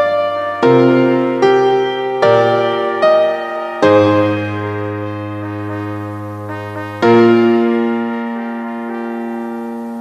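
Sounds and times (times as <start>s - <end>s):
instrumental ballad with piano: 0.0s - 10.0s.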